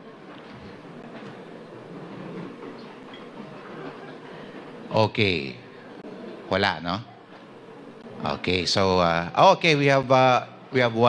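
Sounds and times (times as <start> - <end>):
large hall room noise: 0.0 - 11.0
murmur of distant voices: 0.0 - 11.0.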